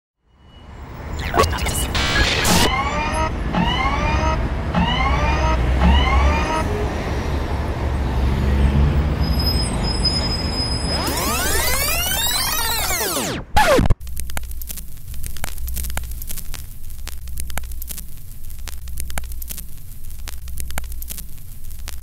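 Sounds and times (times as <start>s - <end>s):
short rising synth tones: 1.2s - 6.7s, 10.4s - 14.0s
synth sweep: 1.2s - 6.8s, 10.8s - 14.0s.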